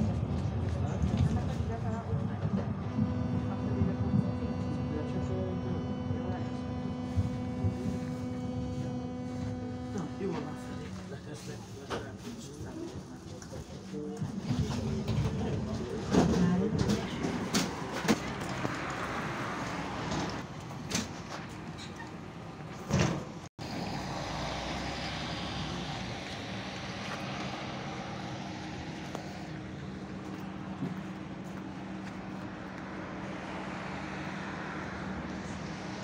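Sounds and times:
tram humming: 0:00.0 - 0:36.0.

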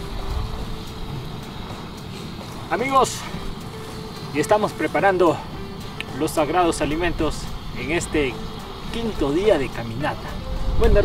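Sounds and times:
wind rumbling on microphone: 0:00.0 - 0:04.2, 0:06.5 - 0:11.0
faint background music note: 0:00.0 - 0:11.0.

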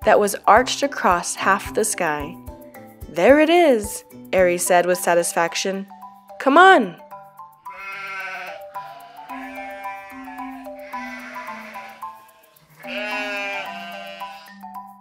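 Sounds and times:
gentle background music: 0:00.0 - 0:15.0
sheep bleating: 0:07.6 - 0:14.6.

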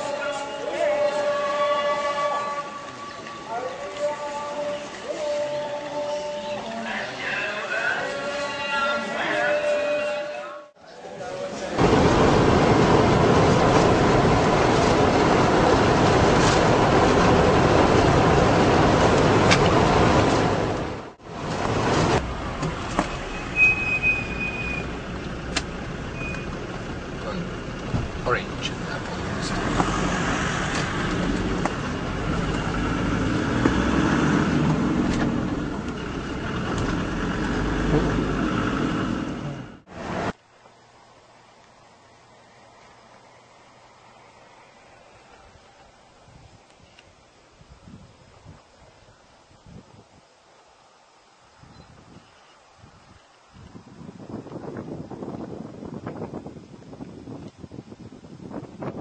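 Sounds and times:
vehicle cabin road rumble: 0:11.7 - 0:40.4.

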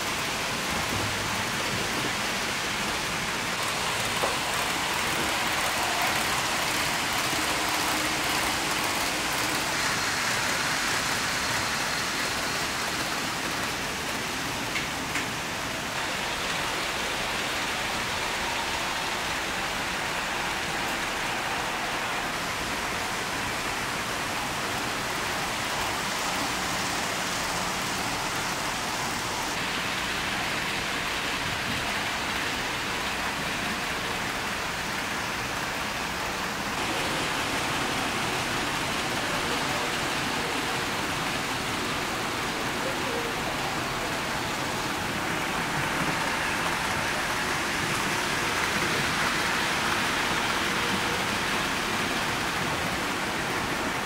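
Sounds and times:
model train wheels on rails: 0:00.0 - 0:54.0.

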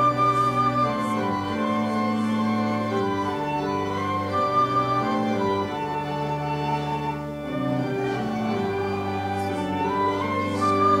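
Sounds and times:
church organ playing hymn chords: 0:00.0 - 0:11.0.

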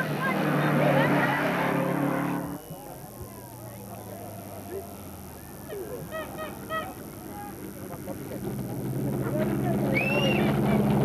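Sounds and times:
rally car engine approaching: 0:00.0 - 0:03.0, 0:03.7 - 0:11.0.

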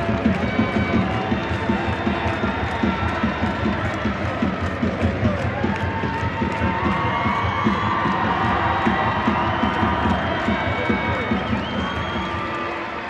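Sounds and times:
stadium crowd cheering and chanting: 0:00.0 - 0:13.0
steady clapping or drum beat: 0:00.0 - 0:13.0.

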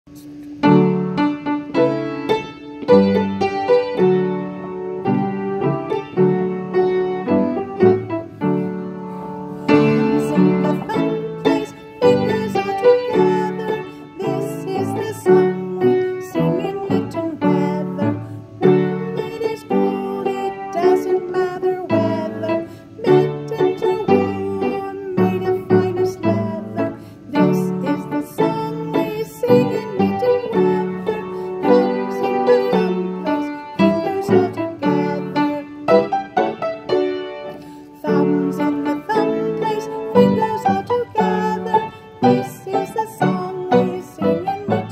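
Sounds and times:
piano playing children's song: 0:00.1 - 0:44.9.

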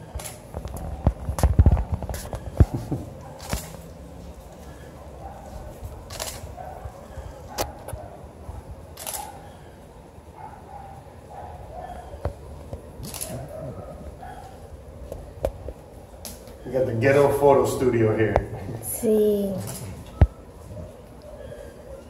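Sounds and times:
camera shutter clicks: 0:03.4 - 0:03.8, 0:06.1 - 0:06.5, 0:09.0 - 0:09.3, 0:13.0 - 0:13.4.

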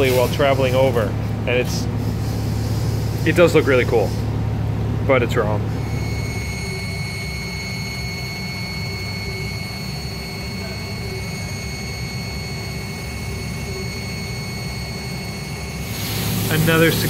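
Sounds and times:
low machine rumble: 0:00.0 - 0:17.0
lathe high whine: 0:05.7 - 0:17.0.

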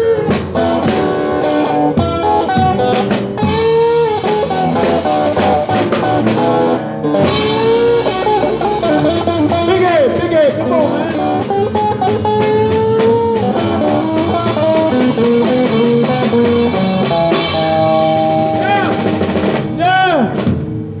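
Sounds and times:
blues band playing: 0:00.0 - 0:21.0
drum kit: 0:00.0 - 0:21.0
electric bass: 0:00.0 - 0:21.0
electric guitar lead with bent notes: 0:00.0 - 0:21.0.

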